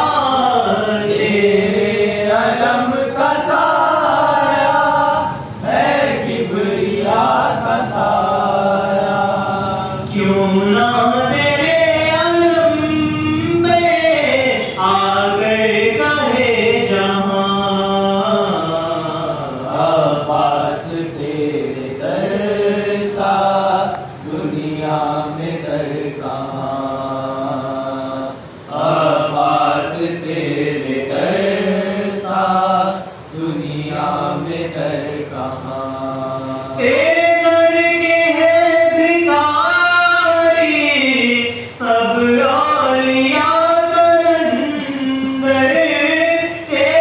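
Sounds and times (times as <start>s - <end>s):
young man chanting devotional poem: 0.0s - 47.0s.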